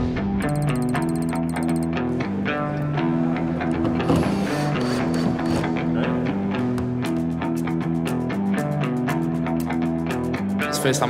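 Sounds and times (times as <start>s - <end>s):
guitar music over steady beat: 0.0s - 11.0s.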